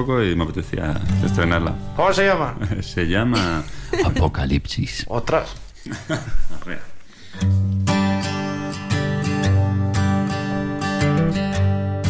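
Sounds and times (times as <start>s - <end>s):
people talking: 0.0s - 5.6s
people laughing: 2.5s - 4.6s, 5.8s - 7.0s
guitar strumming chords: 7.4s - 12.0s.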